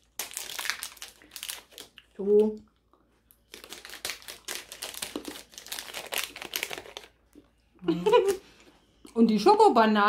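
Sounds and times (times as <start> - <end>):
crackling of food being chewed: 0.0 - 9.2.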